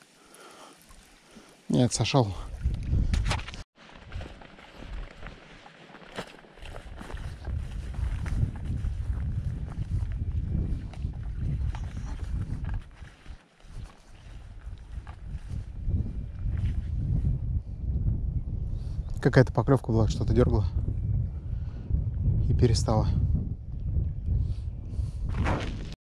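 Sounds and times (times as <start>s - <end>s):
wind buffeting microphone: 2.3s - 5.5s, 6.6s - 26.0s
footsteps on dirt and grass: 3.0s - 17.1s.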